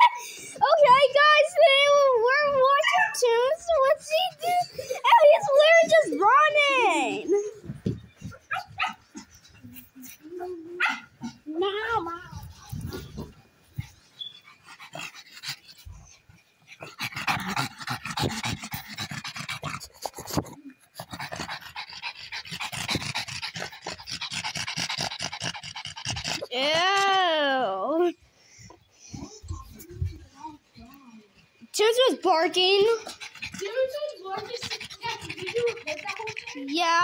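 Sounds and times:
dog panting: 0:00.0 - 0:27.0, 0:29.0 - 0:37.0.

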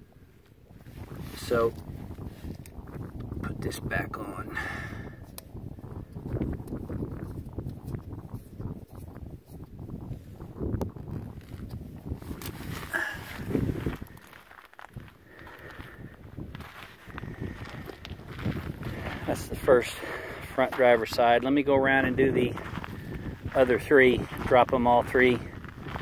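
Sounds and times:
footsteps on gravel: 0:11.2 - 0:26.0
camera handling rustle: 0:11.4 - 0:15.0.

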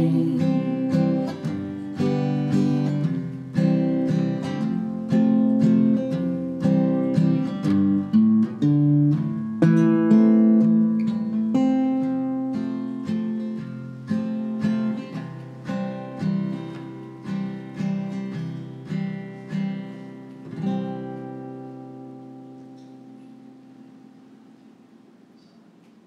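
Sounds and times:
acoustic guitar playing: 0:00.0 - 0:25.4.

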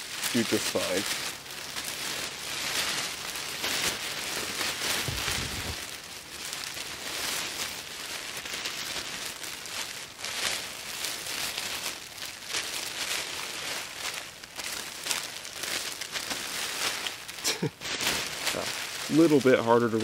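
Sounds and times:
emergency blanket crinkling: 0:00.0 - 0:20.0.

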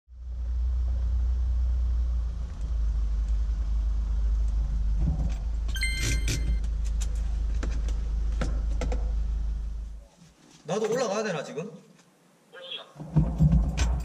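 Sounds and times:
van engine drone inside cabin: 0:00.1 - 0:10.0.

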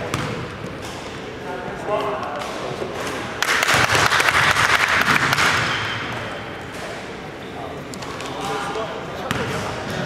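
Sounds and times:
group of people clapping: 0:03.4 - 0:05.6.

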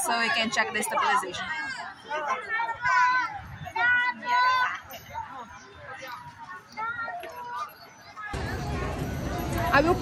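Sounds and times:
passers-by talking: 0:00.0 - 0:10.0
street chatter: 0:00.0 - 0:10.0.

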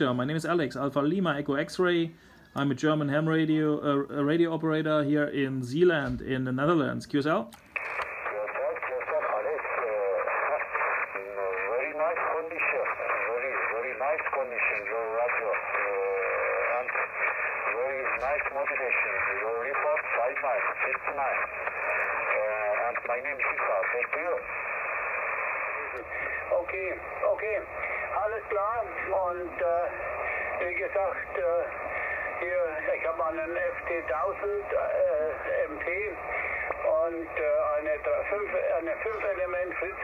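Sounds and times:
radio band noise: 0:07.6 - 0:40.0
thin radio voice: 0:08.0 - 0:40.0.

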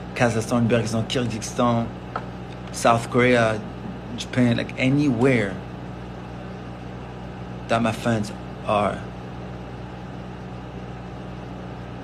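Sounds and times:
steady low electrical hum: 0:00.0 - 0:12.0.

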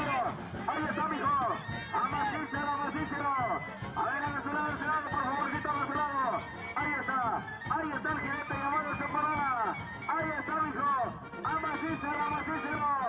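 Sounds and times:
brass band playing: 0:00.0 - 0:13.0.

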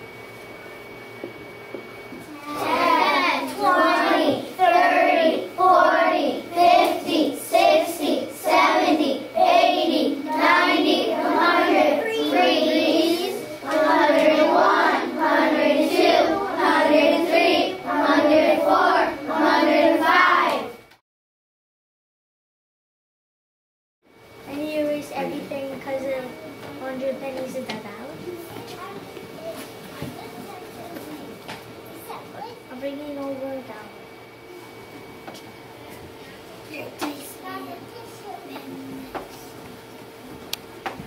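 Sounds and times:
young children singing: 0:02.4 - 0:20.8.

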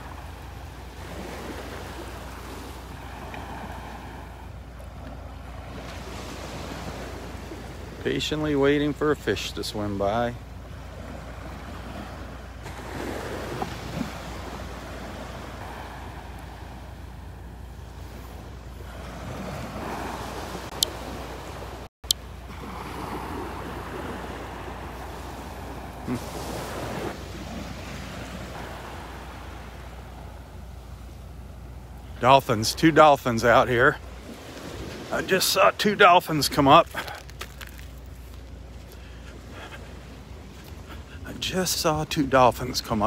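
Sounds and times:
surf lapping onto beach: 0:00.0 - 0:43.0.

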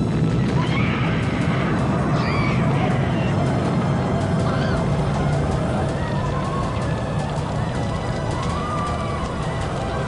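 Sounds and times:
dense low rumble: 0:00.0 - 0:10.0
music: 0:00.0 - 0:10.0.

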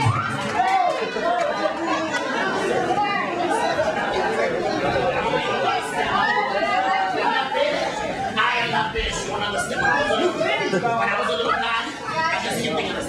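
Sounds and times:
overlapping voices chatter: 0:00.0 - 0:13.0.

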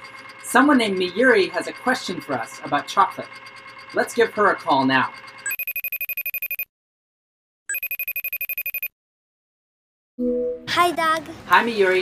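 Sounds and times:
fast trilling phone ringtone: 0:00.0 - 0:06.7, 0:07.7 - 0:08.9.

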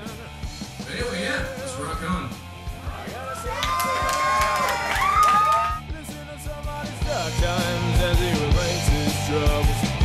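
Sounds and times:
rock band playing: 0:00.0 - 0:10.0
crowd whooping and shouting: 0:01.6 - 0:05.9.

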